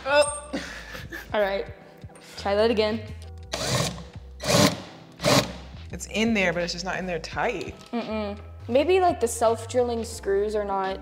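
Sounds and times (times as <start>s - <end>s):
cordless drill driving screw: 3.5s - 5.6s.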